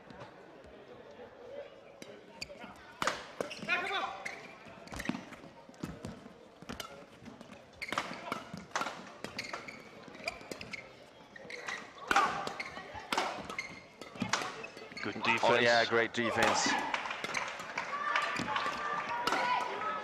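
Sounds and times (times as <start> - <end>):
shoes squeaking on court floor: 2.2 - 15.8
rackets hitting shuttlecock: 3.0 - 3.9, 4.9 - 10.8, 11.5 - 15.6, 16.3 - 20.0.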